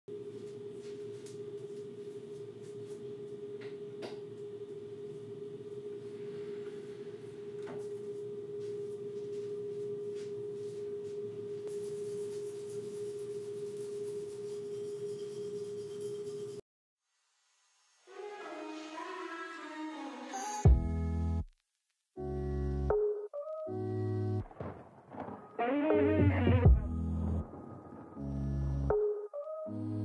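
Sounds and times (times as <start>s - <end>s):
steady even hum: 0.1s - 16.6s.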